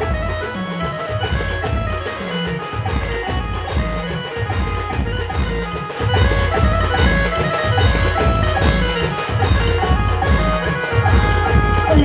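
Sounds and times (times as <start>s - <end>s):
live dance band music: 0.0s - 12.0s.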